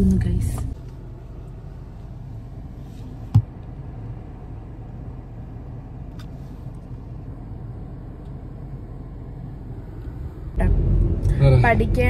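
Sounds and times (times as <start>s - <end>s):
car engine and tyre rumble: 0.0s - 12.0s.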